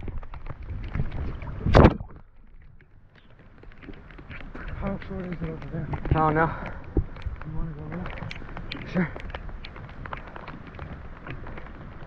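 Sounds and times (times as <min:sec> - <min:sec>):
low rumble: 0:00.0 - 0:12.0
rain falling on lake water: 0:00.0 - 0:12.0.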